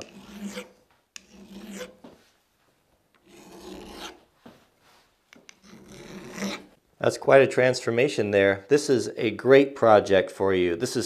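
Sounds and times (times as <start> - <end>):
file rasping on steel: 0.0 - 2.0, 3.2 - 4.2, 5.5 - 6.7.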